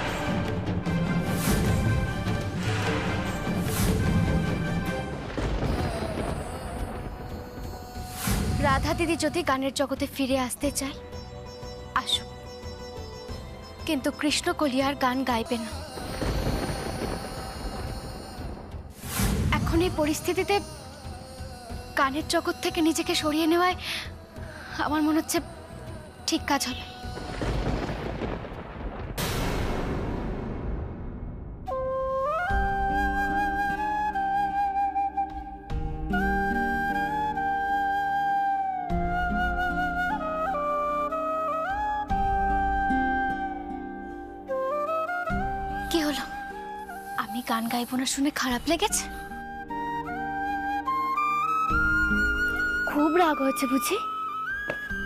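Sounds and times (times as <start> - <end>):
dramatic background score: 0.0 - 55.0
low thunder-like rumbling: 3.1 - 9.4, 16.0 - 20.3, 27.1 - 31.9
slow wind instrument melody: 31.7 - 47.6, 49.0 - 55.0.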